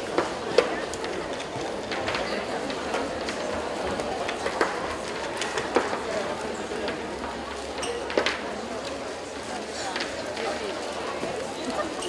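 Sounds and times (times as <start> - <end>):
sports hall background noise: 0.0 - 12.0.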